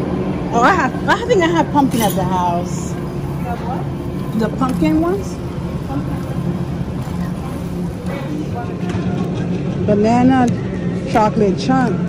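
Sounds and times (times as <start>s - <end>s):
faint voices: 0.0s - 12.0s
low hum and rumble: 0.0s - 12.0s.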